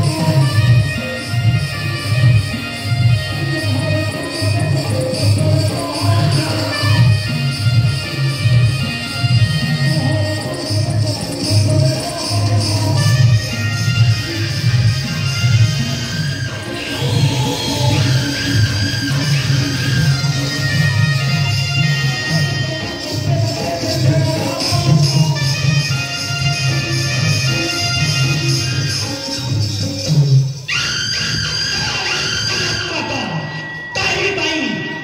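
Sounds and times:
band music: 0.0s - 35.0s
shrill high-pitched tone: 30.6s - 35.0s.

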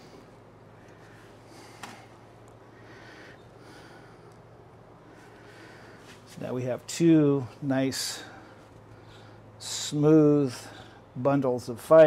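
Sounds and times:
soft breathing: 0.0s - 6.4s, 7.4s - 9.6s.

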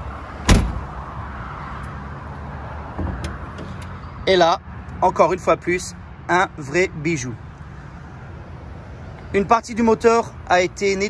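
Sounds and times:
car latch clunking: 0.4s - 0.9s, 3.0s - 3.9s.

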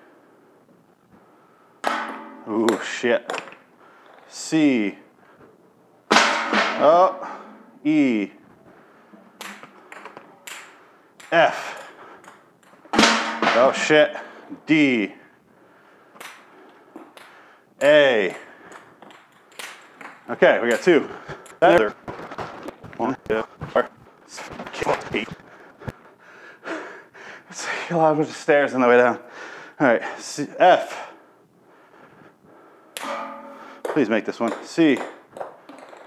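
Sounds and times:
ball clanging on metal can: 1.8s - 4.2s, 6.1s - 7.7s, 9.1s - 11.4s, 12.2s - 14.2s, 33.0s - 36.0s
ping-pong ball bouncing on hard floor: 33.0s - 36.0s.

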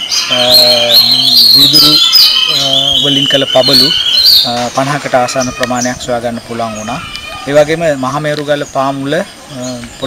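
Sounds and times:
small birds chirping: 0.0s - 10.0s
man's low voice: 0.3s - 3.8s.

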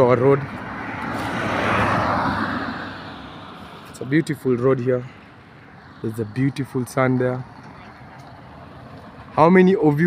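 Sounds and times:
car passing on dirt road: 0.0s - 9.6s.

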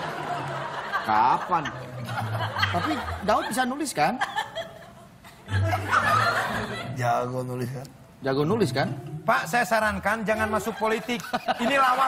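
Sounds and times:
group of people laughing: 0.0s - 7.0s, 10.5s - 12.0s.

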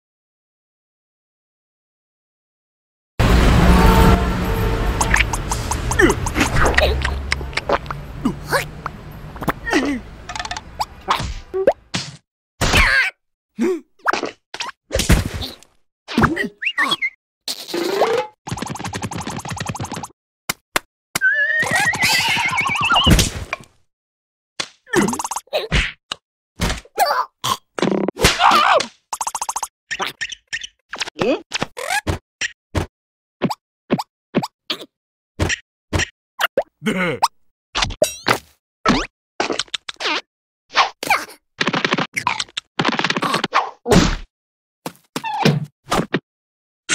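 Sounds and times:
cartoon squishy plops: 5.0s - 8.7s, 27.8s - 30.2s
rising cartoon tones: 21.2s - 23.1s
cartoon plops: 27.8s - 30.1s.

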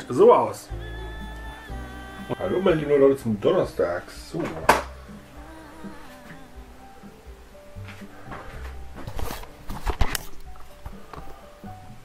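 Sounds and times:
background music: 0.0s - 12.0s
camera handling rustles: 9.0s - 11.2s.

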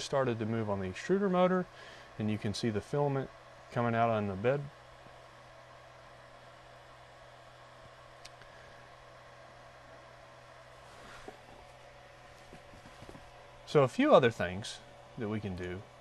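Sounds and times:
fan hum and hiss: 0.0s - 16.0s.

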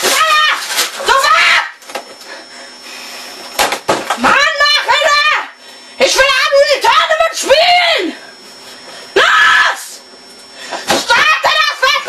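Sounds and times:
boy shouting shrilly: 0.0s - 1.8s
faint steady hum: 0.0s - 12.0s.

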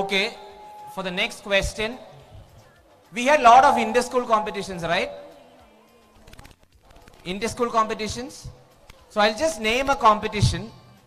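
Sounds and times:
man speaking over a microphone: 0.0s - 2.1s, 3.2s - 5.3s, 7.2s - 10.7s.

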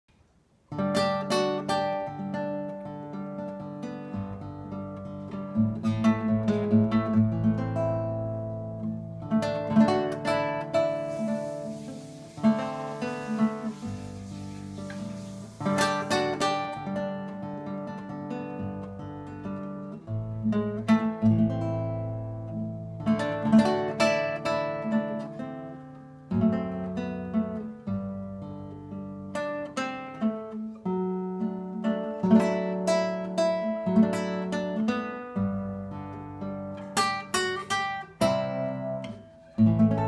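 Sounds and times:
fingerstyle classical guitar: 0.1s - 40.0s.

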